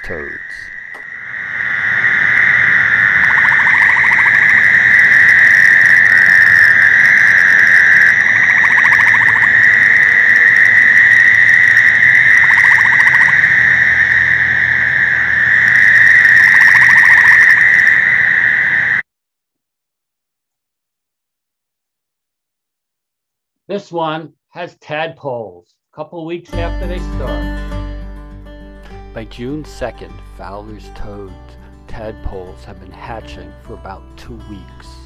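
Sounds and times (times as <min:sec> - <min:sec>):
toads buzzing chorus: 0:00.0 - 0:19.0
tree frog pulsed trill: 0:00.0 - 0:19.0.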